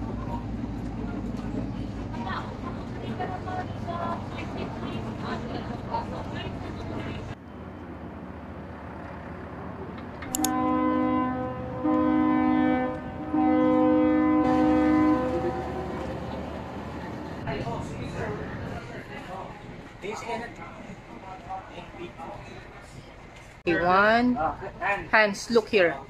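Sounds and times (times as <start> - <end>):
faint voices: 0.0 - 7.4, 15.8 - 23.6
low engine rumble: 0.0 - 23.6
ship's horn blasts: 10.3 - 18.6.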